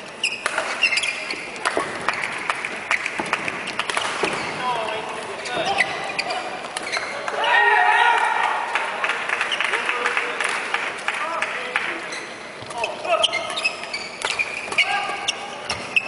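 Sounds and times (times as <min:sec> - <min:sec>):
shoes squeaking on court floor: 0:00.0 - 0:07.3, 0:11.9 - 0:16.0
racket hitting shuttlecock: 0:00.2 - 0:04.6
crowd shouting and cheering: 0:07.1 - 0:09.9.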